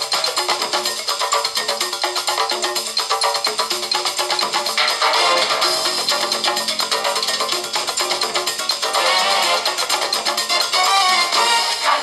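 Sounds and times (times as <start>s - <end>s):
music with fast beat: 0.0s - 12.0s.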